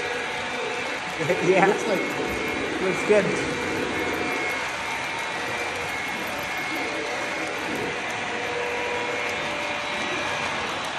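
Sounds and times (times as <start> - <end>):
faint steady tones: 0.0 - 10.9
model train wheels whirring: 0.0 - 10.9.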